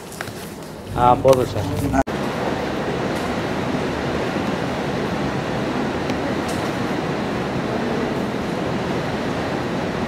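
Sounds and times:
steady rushing noise: 0.8 - 10.0.

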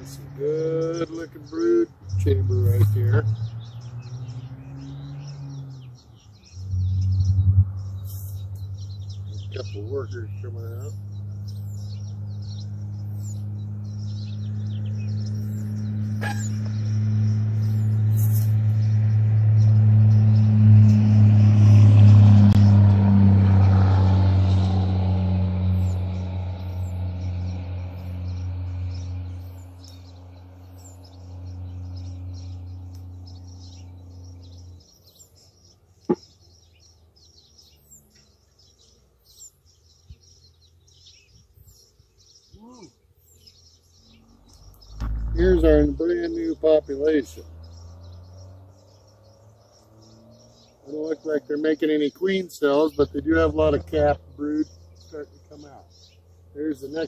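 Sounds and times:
low engine hum: 0.0 - 57.0
small birds chirping: 0.0 - 57.0.

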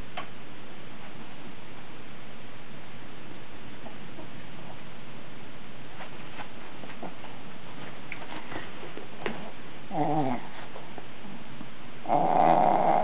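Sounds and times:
puppy vocalizing: 9.9 - 10.7, 12.0 - 13.0.

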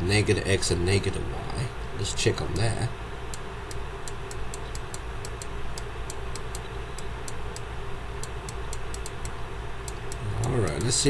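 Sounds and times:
background hiss and hum: 0.0 - 11.0.

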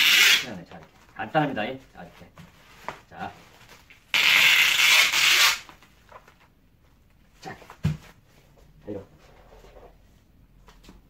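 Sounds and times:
packing tape unrolling from dispenser: 0.0 - 0.6, 3.7 - 5.8.

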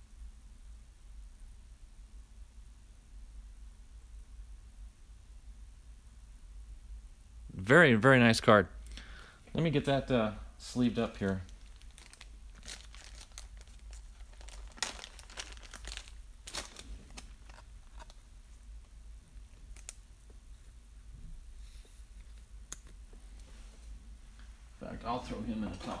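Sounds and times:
plastic sleeve crinkling: 10.8 - 20.8.

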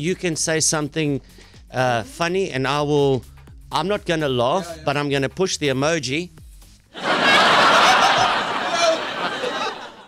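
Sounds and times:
recorded laugh track: 7.0 - 10.0.

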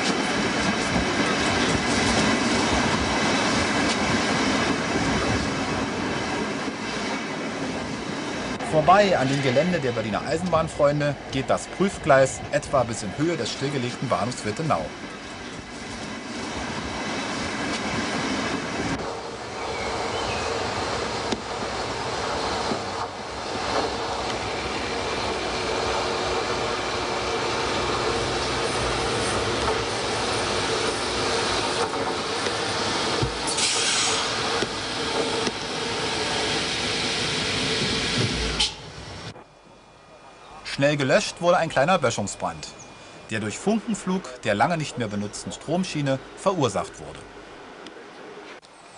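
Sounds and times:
electric train running on track: 0.0 - 48.9.

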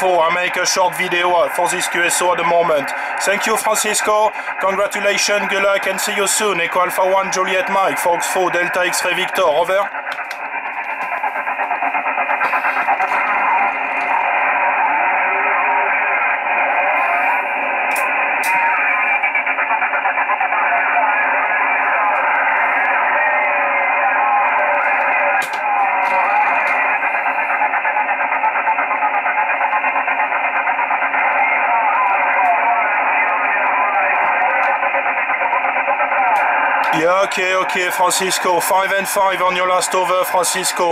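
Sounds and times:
narrow-band radio hiss: 0.0 - 40.9
weak distorted radio voice: 0.0 - 40.9.

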